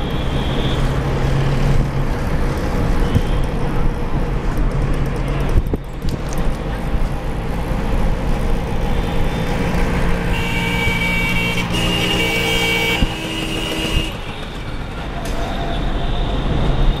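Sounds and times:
vehicle engine and road noise: 0.0 - 17.0
vehicle horn blasts: 10.3 - 14.2.

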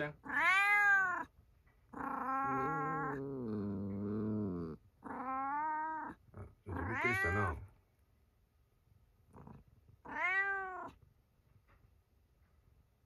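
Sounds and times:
cat growling yowl: 0.0 - 1.3, 1.9 - 7.7, 9.3 - 11.0.

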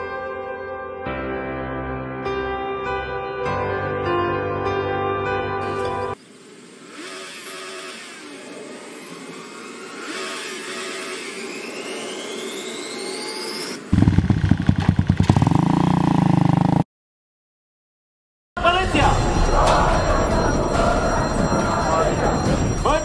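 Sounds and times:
thin whine rising in pitch: 10.8 - 13.9
motorcycle engine revving: 13.8 - 16.8.

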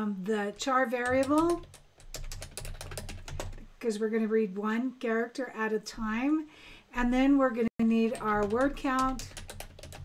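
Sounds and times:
typing on computer keyboard: 0.6 - 3.7, 8.0 - 10.0.

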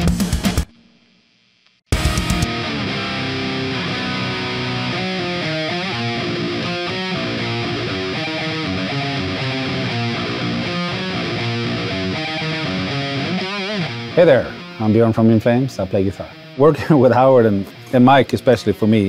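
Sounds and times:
distorted electric guitar riff: 0.0 - 19.0.

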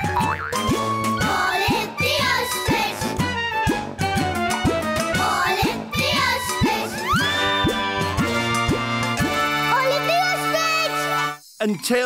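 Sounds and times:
bouncy cartoon music: 0.0 - 11.9
springy boing effect: 0.1 - 0.7.

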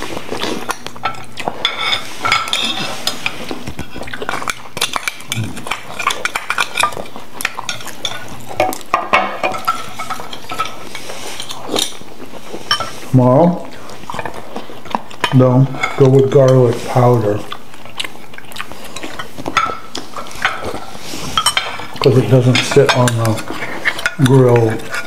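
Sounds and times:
spoons scraping on shells and plates: 0.6 - 13.1, 15.2 - 17.5, 18.8 - 25.0.

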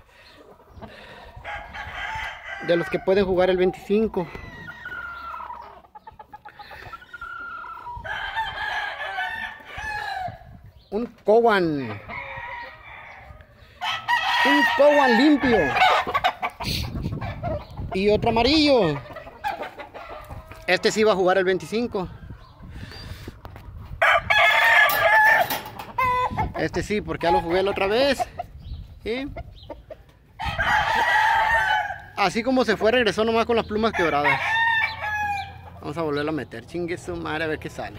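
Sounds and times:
roosters crowing: 0.0 - 10.7, 11.3 - 28.5, 29.8 - 37.9
rooster crowing: 1.4 - 3.2, 7.1 - 10.4, 11.8 - 16.1, 24.0 - 26.4, 30.4 - 32.1, 33.9 - 35.6.

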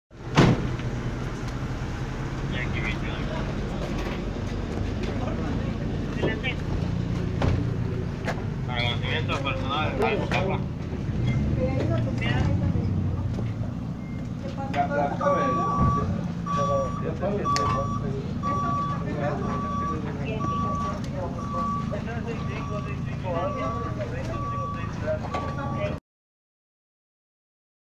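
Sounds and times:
vehicle engine idling: 0.2 - 26.0
people talking: 2.5 - 6.8, 7.5 - 10.7, 11.3 - 13.5, 14.4 - 26.0
high electronic warning beep: 15.2 - 26.0.

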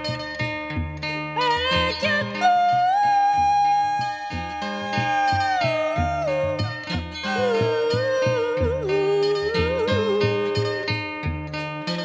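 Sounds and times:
plucked box zither: 0.0 - 12.0
woman singing high: 1.4 - 10.8.

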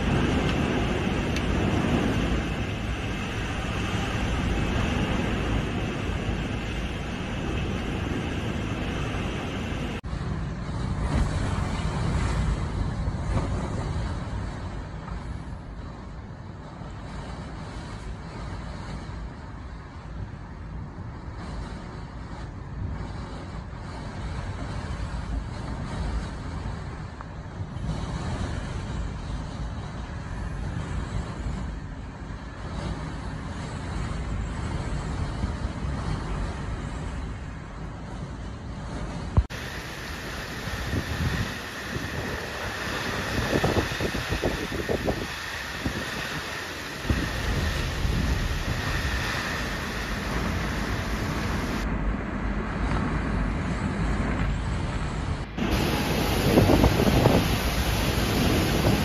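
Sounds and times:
heavy rain: 0.0 - 13.2, 39.4 - 51.9, 55.4 - 59.0
strong wind gusts: 0.0 - 59.0
wind buffeting microphone: 0.0 - 59.0.

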